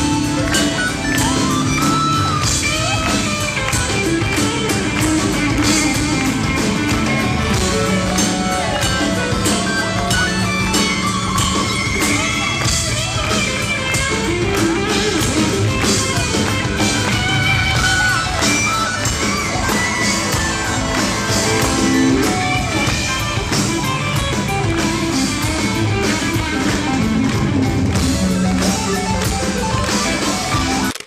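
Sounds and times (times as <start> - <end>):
live rock band playing: 0.0 - 31.0.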